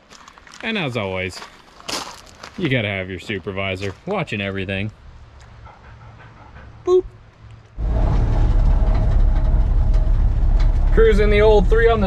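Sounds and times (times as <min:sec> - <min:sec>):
person saying boop: 0:06.9 - 0:07.2
pickup truck engine rumble: 0:07.8 - 0:12.0.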